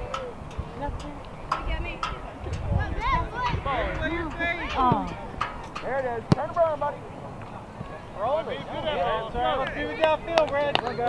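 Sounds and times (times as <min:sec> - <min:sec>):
voices shouting: 0:00.0 - 0:11.0
sharp thump: 0:04.7 - 0:06.6.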